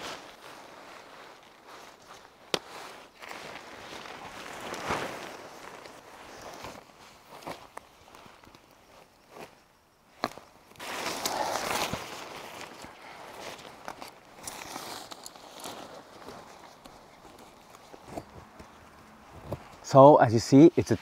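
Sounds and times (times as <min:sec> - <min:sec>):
footsteps in grass: 0:00.0 - 0:09.6, 0:10.8 - 0:21.0
tent fabric rustling: 0:00.0 - 0:09.6, 0:10.7 - 0:21.0.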